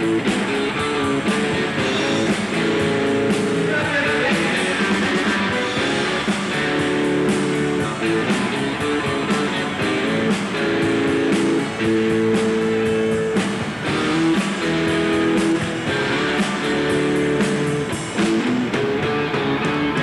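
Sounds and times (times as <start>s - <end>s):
drums steady beat: 0.0s - 20.0s
electric guitar long notes: 0.0s - 20.0s.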